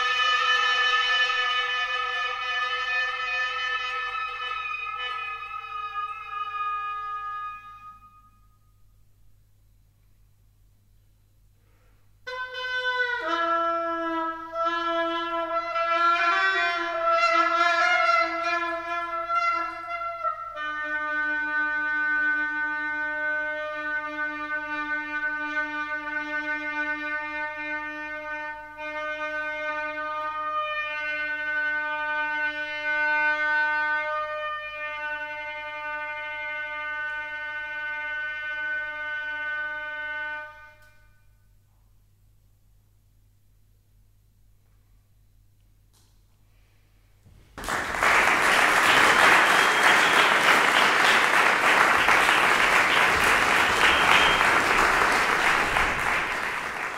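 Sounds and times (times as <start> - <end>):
solo oboe playing: 0.0 - 8.6, 12.2 - 41.6, 48.9 - 56.9.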